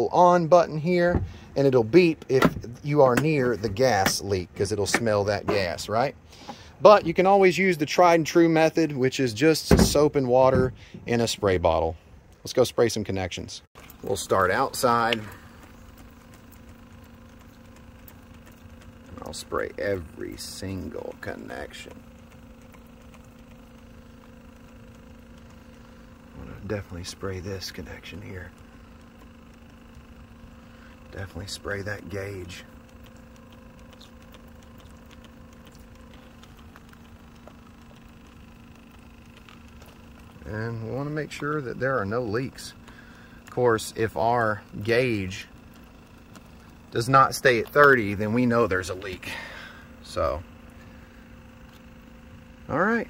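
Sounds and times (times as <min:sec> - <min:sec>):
faint mechanical hum: 0:00.0 - 0:53.0.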